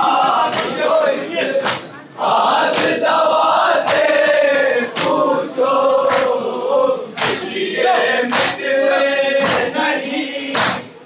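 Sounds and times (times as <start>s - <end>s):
men chanting in chorus: 0.0s - 11.0s
unison chest-beating strikes: 8.3s - 8.6s, 10.6s - 10.9s.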